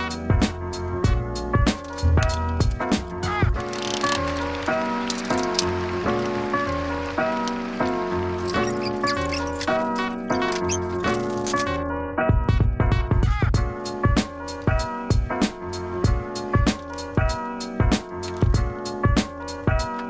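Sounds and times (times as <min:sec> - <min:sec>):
instrumental music with pulsing bass: 0:00.0 - 0:20.0.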